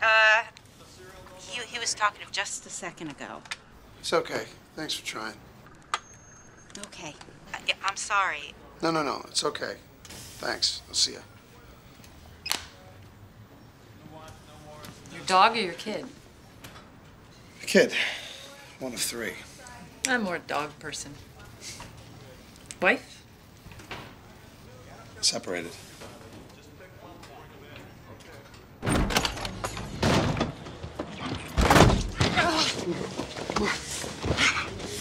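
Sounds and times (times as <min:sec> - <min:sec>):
faint low hum: 0:02.4 - 0:10.0
door banging open: 0:28.8 - 0:32.5.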